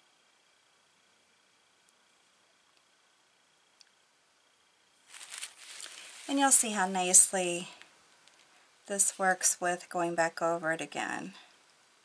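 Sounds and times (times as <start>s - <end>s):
glass bottle shifted on paper: 5.1s - 6.5s.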